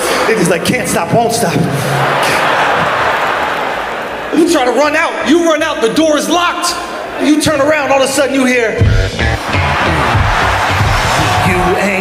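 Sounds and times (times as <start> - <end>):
large audience laughing: 1.4 - 4.3, 9.2 - 11.5.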